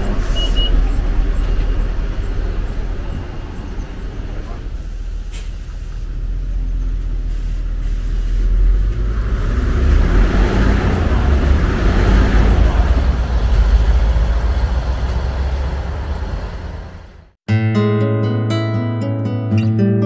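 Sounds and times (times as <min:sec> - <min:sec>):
bus engine rumble: 0:00.0 - 0:17.4
road noise: 0:00.0 - 0:17.4.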